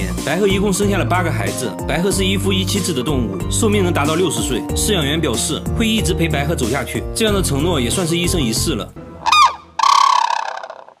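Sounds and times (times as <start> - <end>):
crane calling: 9.2 - 11.0.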